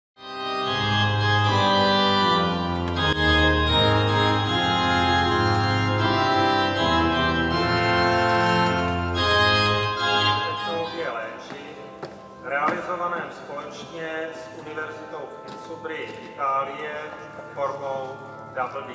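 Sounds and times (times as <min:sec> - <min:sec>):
organ playing held chords: 0:00.2 - 0:18.9
man speaking: 0:10.1 - 0:18.9.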